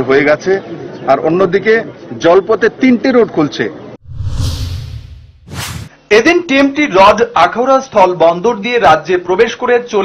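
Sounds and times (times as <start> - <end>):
short bright swoosh: 4.0 - 6.0
swoosh with low rumble: 4.0 - 6.0.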